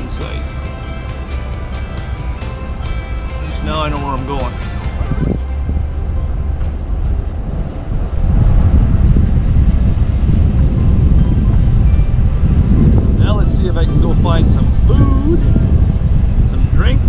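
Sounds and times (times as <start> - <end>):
car driving slowly rumble: 0.0 - 17.0.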